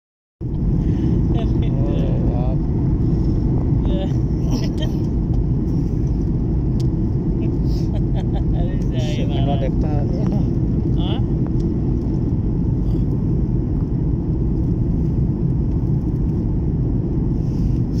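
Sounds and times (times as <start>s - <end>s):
airliner cabin engine rumble: 0.4s - 18.0s.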